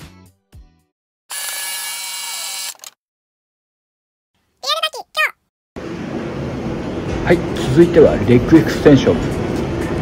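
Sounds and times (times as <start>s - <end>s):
camera shutter clicks: 1.3s - 3.0s.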